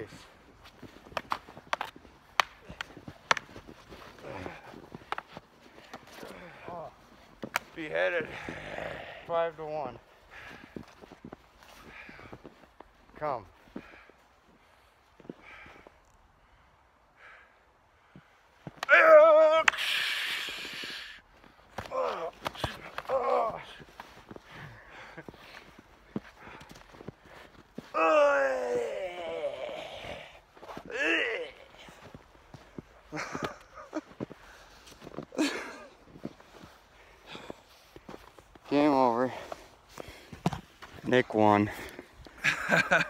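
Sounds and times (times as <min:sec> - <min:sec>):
men yelling and grunting: 0:01.2 - 0:11.0, 0:18.7 - 0:26.9, 0:27.7 - 0:32.3
laughter: 0:42.4 - 0:43.0.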